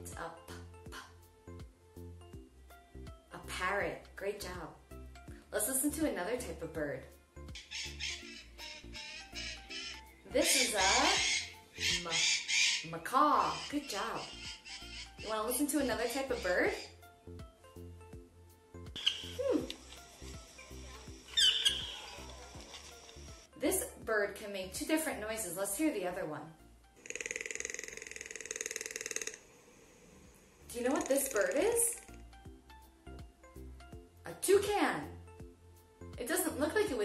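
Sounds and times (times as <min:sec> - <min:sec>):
toucan croaking rattle: 0:07.5 - 0:16.9, 0:19.0 - 0:20.2, 0:21.2 - 0:23.3, 0:27.0 - 0:30.0, 0:30.6 - 0:32.2
macaw squawking: 0:07.5 - 0:17.0, 0:19.0 - 0:23.0, 0:27.0 - 0:29.4, 0:30.8 - 0:32.2.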